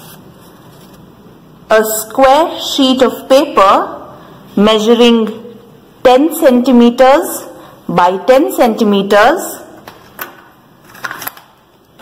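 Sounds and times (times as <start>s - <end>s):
soft clicks and paper rustles: 0.0s - 1.1s.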